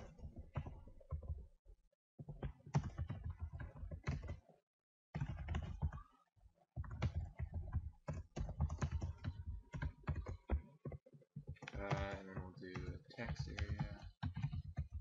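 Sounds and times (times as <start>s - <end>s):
rapid keyboard typing: 0.0s - 1.5s, 2.2s - 4.6s, 5.2s - 6.2s, 6.8s - 15.0s.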